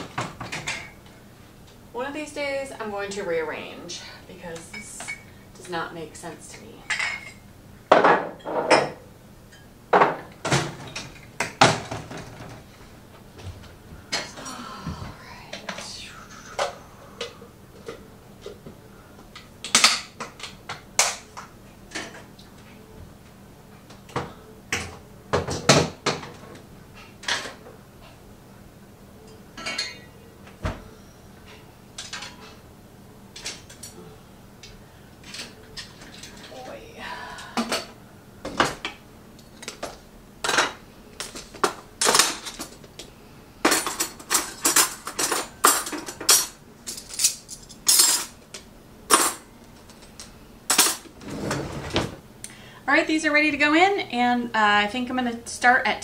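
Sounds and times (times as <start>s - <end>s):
dishes and cutlery clinking: 6.8s - 12.5s, 29.3s - 30.2s, 43.7s - 48.4s.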